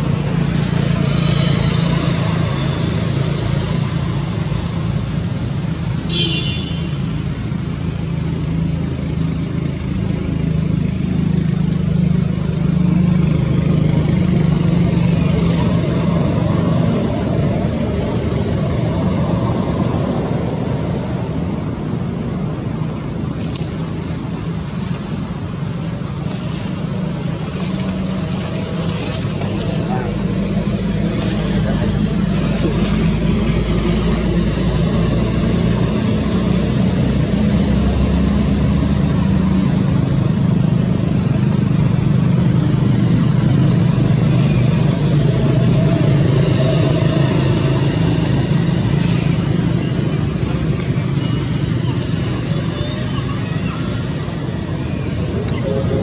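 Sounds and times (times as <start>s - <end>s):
low engine hum: 0.0s - 56.0s.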